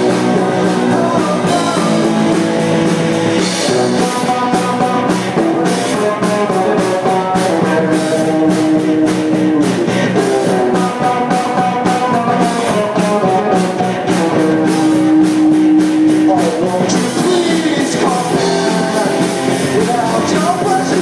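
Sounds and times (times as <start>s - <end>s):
bass guitar: 0.0s - 21.0s
drum kit steady beat: 0.0s - 21.0s
electric guitars: 0.0s - 21.0s.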